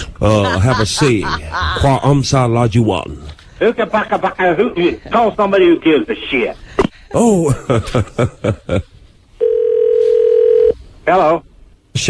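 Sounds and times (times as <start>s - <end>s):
telephone dial tone: 9.4s - 10.7s.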